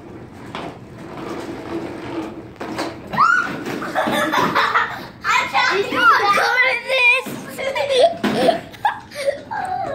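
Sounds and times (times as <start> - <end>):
toy cart wheels rolling on floor: 0.0 - 9.9.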